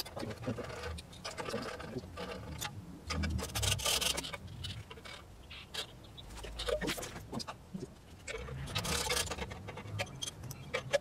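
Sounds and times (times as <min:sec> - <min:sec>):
metal rasping: 0:00.0 - 0:11.0.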